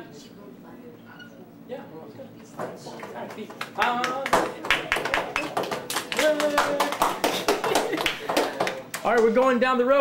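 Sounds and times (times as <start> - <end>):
students applauding: 3.4 - 9.3.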